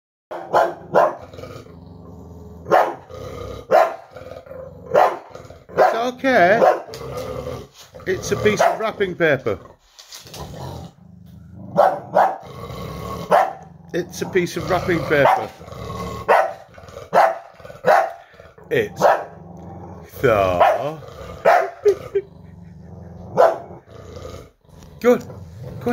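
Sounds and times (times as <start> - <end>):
dog barking sharply: 0.3 - 1.2, 2.7 - 3.0, 3.7 - 4.1, 5.0 - 6.0, 6.6 - 6.9, 8.6 - 8.8, 11.8 - 12.4, 13.3 - 13.6, 16.3 - 18.2, 19.0 - 19.4, 20.6 - 21.9, 23.4 - 23.6
dog growling low: 0.8 - 25.9.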